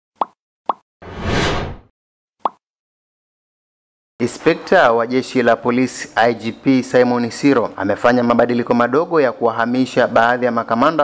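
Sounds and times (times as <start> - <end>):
whoosh: 1.0 - 1.9.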